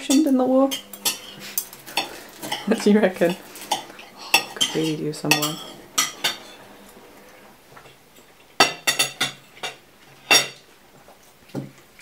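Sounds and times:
knife and fork scraping on plate: 0:00.7 - 0:07.3.

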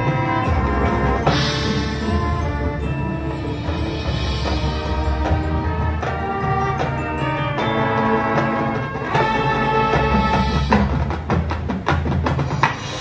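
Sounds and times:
drum and percussion hits: 0:00.0 - 0:13.0
marching band playing chords: 0:00.0 - 0:13.0.

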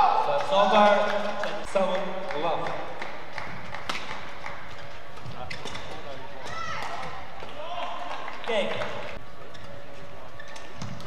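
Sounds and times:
indoor hall noise: 0:00.0 - 0:11.0
shoes squeaking: 0:03.6 - 0:07.4, 0:09.2 - 0:11.0
racket hitting shuttlecock: 0:03.7 - 0:04.3.

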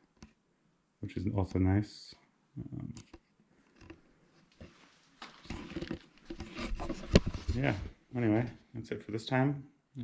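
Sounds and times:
camera handling rustle: 0:03.7 - 0:07.7.

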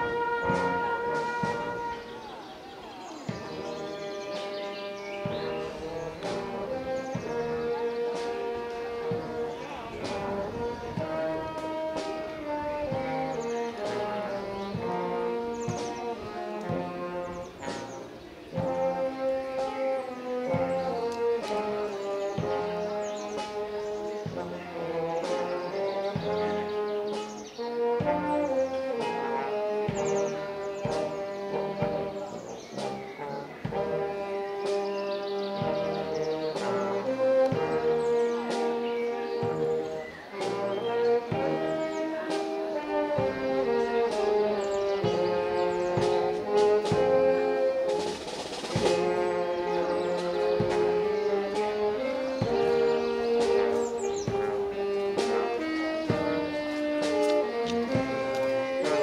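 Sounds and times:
brass marching band playing: 0:00.0 - 0:59.0
bass drum strokes: 0:03.3 - 0:26.9, 0:35.6 - 0:59.0.

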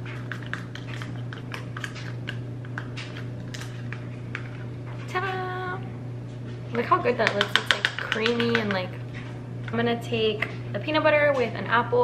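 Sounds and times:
metal spoon stirring in plastic container: 0:00.1 - 0:04.7, 0:07.0 - 0:09.0.

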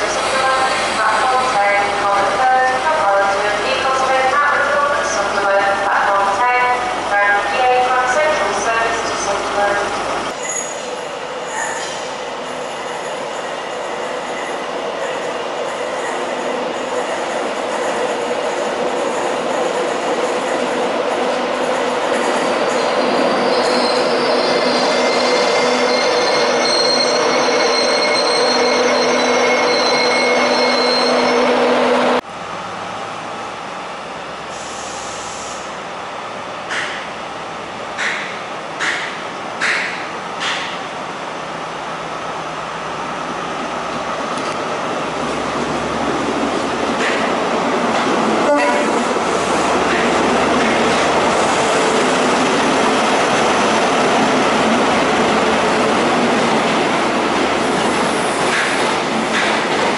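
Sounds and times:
train running: 0:00.0 - 0:59.9
wheel and brake squeal: 0:10.4 - 0:13.1, 0:22.7 - 0:31.6.

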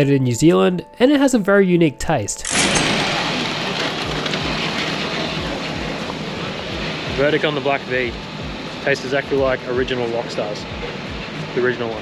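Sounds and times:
city street noise: 0:02.5 - 0:12.0.

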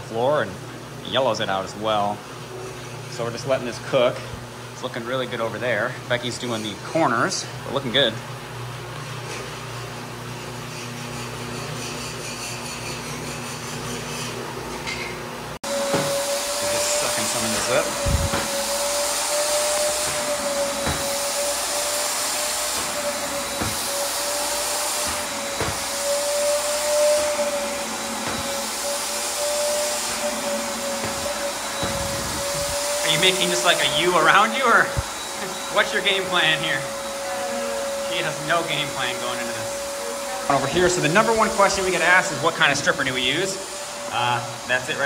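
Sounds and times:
floor scrubbing machine humming: 0:00.0 - 0:45.0
wet vacuum whining: 0:00.0 - 0:45.0.

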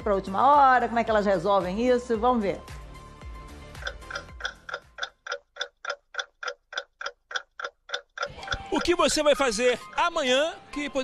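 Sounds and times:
clock ticking: 0:03.7 - 0:11.0.

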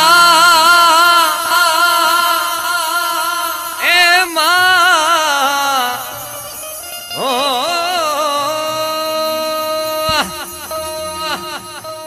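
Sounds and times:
person singing with vibrato: 0:00.0 - 0:12.0.

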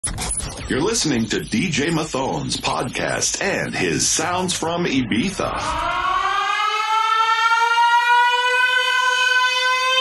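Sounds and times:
siren-like rising tone: 0:05.4 - 0:10.0.

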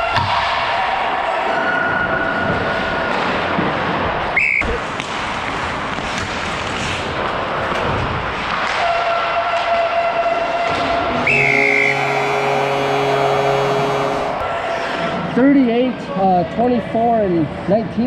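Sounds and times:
skates on ice: 0:01.4 - 0:11.2
referee whistle blast: 0:04.4 - 0:04.7, 0:11.2 - 0:14.2
buzzing goal horn: 0:11.1 - 0:14.5.

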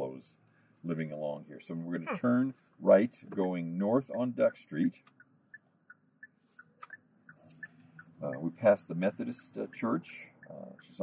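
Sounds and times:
low hum inside car: 0:00.0 - 0:11.0
turn signal ticking: 0:04.9 - 0:11.0.

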